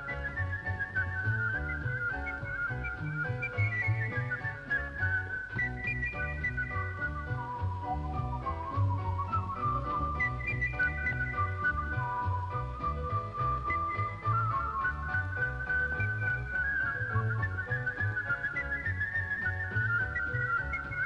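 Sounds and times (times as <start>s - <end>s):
acoustic guitar: 0.0s - 21.0s
whistled melody: 0.0s - 21.0s.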